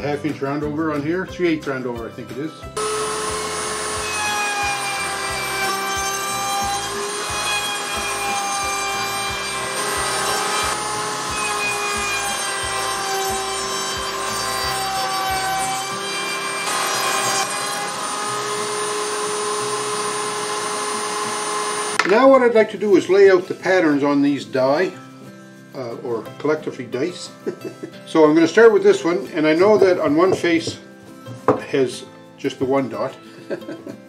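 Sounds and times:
wood router whining: 0:02.8 - 0:22.1.

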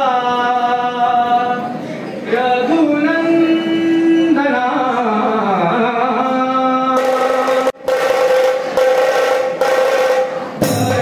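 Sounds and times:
men singing long notes: 0:10.6 - 0:11.0.

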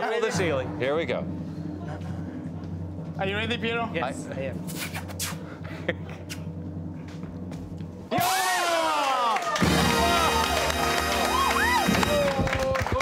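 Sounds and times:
suspense music: 0:00.2 - 0:13.0
drum roll: 0:08.0 - 0:13.0
audience cheering and shouting: 0:08.1 - 0:13.0.

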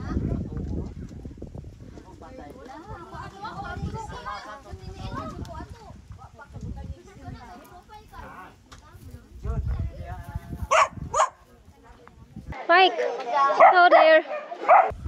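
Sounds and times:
wind rumble on microphone: 0:00.0 - 0:12.6
indistinct voices talking: 0:02.6 - 0:15.0
dog barking: 0:10.7 - 0:11.4, 0:13.6 - 0:15.0
woman speaking: 0:13.6 - 0:14.3.

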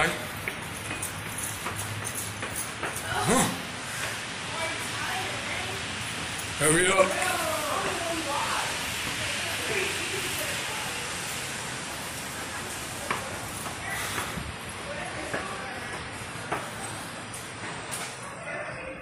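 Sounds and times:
footsteps on stairs: 0:00.0 - 0:05.1, 0:06.0 - 0:18.2
steady rushing hiss: 0:00.0 - 0:18.0
faint voices: 0:02.1 - 0:19.0.

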